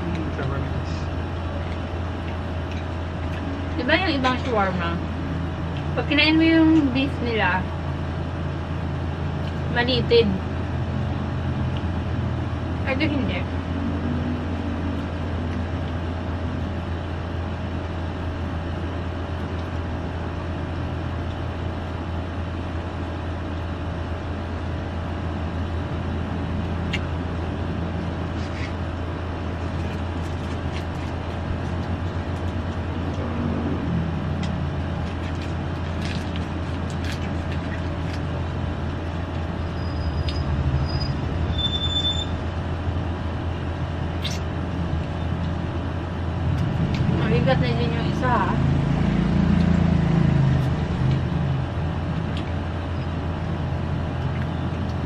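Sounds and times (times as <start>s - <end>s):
steady low hum: 0.0s - 41.6s, 42.2s - 55.0s
person chewing chicken wings: 1.4s - 3.6s, 34.3s - 39.5s.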